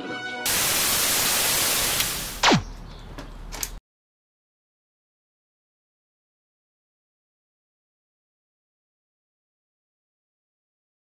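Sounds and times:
loud static hiss: 0:00.5 - 0:02.7.

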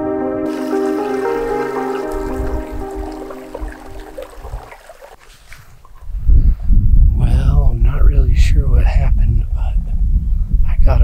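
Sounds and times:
ambient music with held tones: 0:00.0 - 0:04.8
water trickling over rocks: 0:00.5 - 0:06.2.

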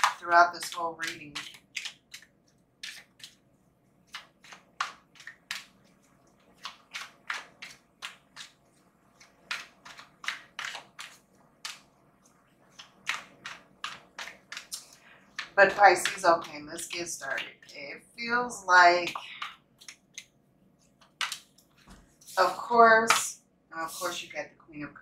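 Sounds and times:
cards being shuffled: 0:00.1 - 0:03.4, 0:04.1 - 0:15.6.

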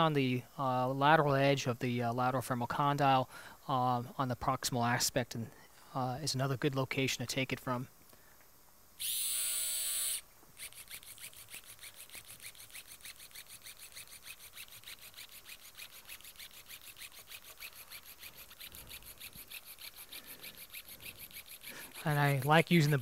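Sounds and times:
powered shaver pulsing: 0:09.0 - 0:23.0
whining hiss: 0:09.0 - 0:23.0.

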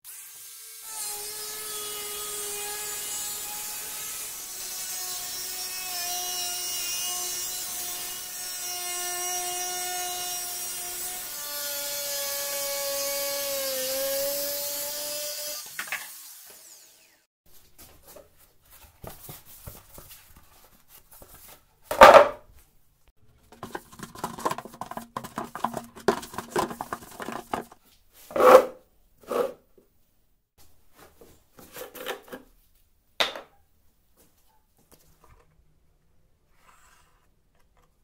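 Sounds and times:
angle grinder cutting plastic: 0:00.1 - 0:17.3, 0:23.6 - 0:29.6.

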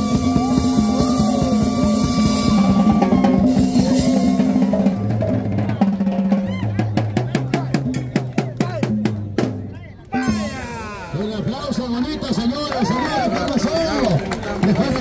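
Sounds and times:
drum strokes: 0:00.0 - 0:11.7
live band playing dance tune: 0:00.0 - 0:11.8
voices: 0:00.0 - 0:15.0.

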